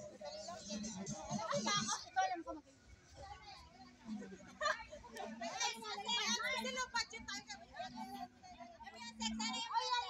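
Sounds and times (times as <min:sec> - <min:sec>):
women chattering and calling out: 0:00.4 - 0:10.0.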